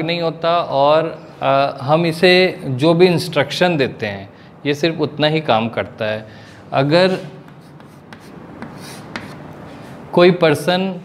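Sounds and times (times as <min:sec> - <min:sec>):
chalk writing on blackboard: 0:07.0 - 0:10.0
chalk tapping on board: 0:07.1 - 0:10.0.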